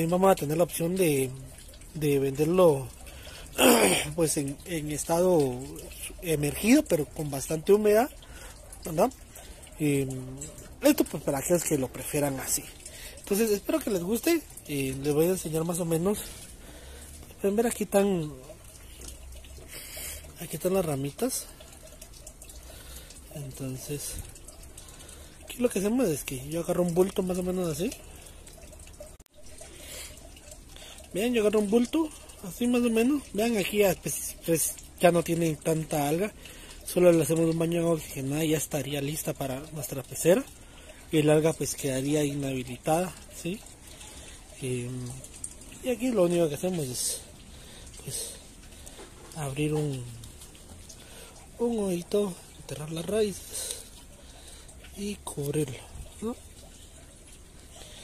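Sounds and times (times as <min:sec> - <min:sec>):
water trickling and dripping: 0:00.0 - 0:58.0.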